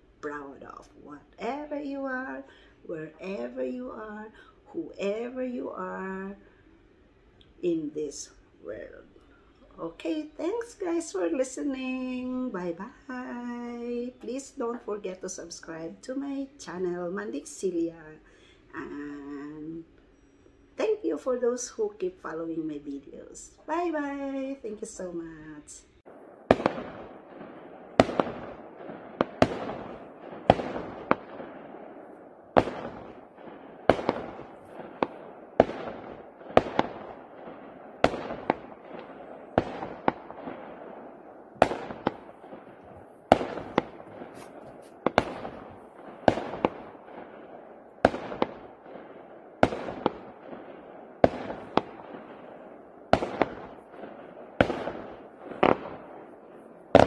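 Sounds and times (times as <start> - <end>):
fireworks bangs echoing: 23.7 - 57.0.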